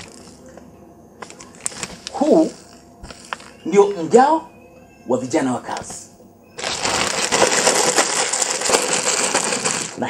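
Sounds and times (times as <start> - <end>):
rapid clicks and clatter: 6.8 - 10.0.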